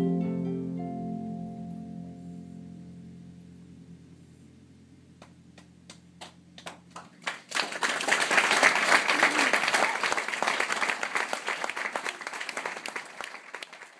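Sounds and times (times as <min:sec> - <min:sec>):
harp chord: 0:00.0 - 0:05.8
audience applause: 0:06.2 - 0:13.9.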